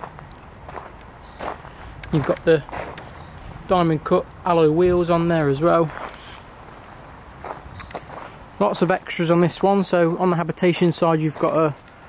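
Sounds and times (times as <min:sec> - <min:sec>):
footsteps on gravel: 0:00.0 - 0:04.2, 0:04.9 - 0:12.0
low background noise: 0:00.0 - 0:12.0.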